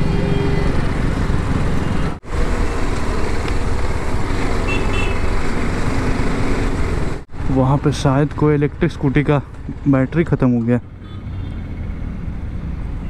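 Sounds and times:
road and wind noise: 0.0s - 13.0s.

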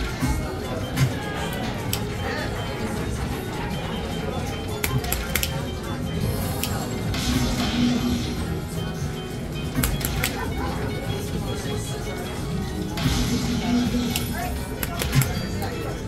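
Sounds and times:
background chatter: 0.0s - 16.0s
slot machine bonus music: 0.0s - 16.0s.

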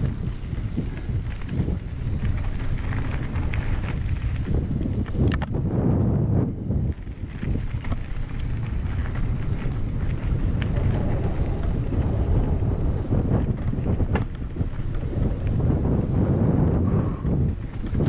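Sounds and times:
rattles and knocks from riding: 0.0s - 5.7s, 6.8s - 16.3s, 17.4s - 18.0s
wind buffeting microphone: 0.0s - 18.0s.

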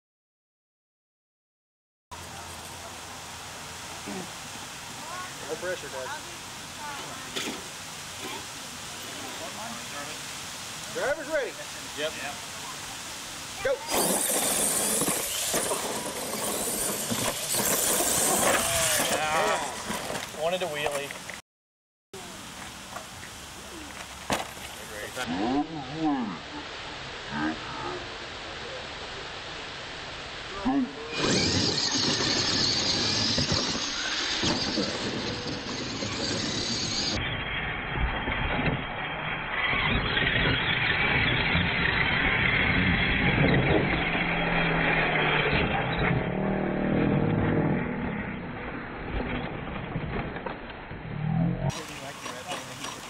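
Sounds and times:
radio-controlled truck motors racing: 13.6s - 21.3s, 30.8s - 49.6s, 51.1s - 53.0s.

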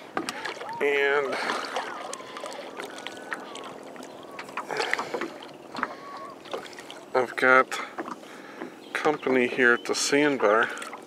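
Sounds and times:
water splashing around kayak: 0.0s - 11.0s.

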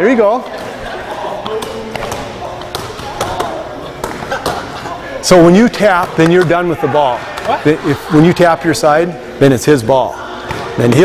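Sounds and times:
players slapping their sides: 1.4s - 4.9s.

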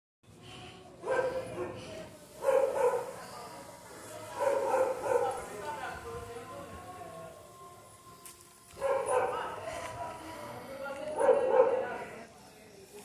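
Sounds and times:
small dog barking: 1.1s - 1.8s, 2.4s - 3.1s, 4.4s - 5.4s, 11.2s - 11.9s.

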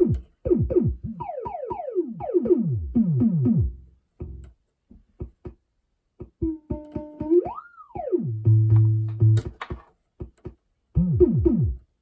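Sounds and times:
synth kick drum hits: 0.0s - 1.6s.

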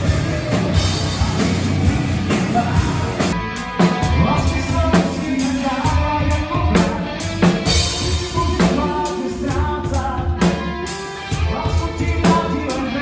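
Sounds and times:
bass guitar: 0.0s - 13.0s
drum kit beating: 0.0s - 13.0s
electric guitars: 0.0s - 13.0s
person singing: 0.0s - 13.0s.

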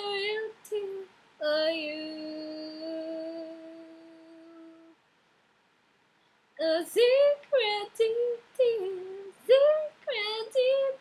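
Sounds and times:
woman singing unaccompanied: 0.0s - 5.0s, 6.6s - 11.0s.

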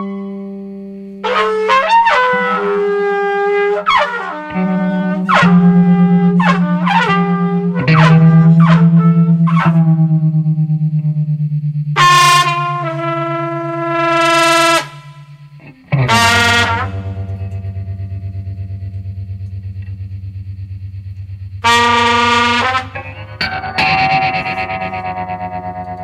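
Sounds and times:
distorted guitar droning with tremolo: 0.0s - 26.0s
bright ringing guitar notes: 4.5s - 26.0s.

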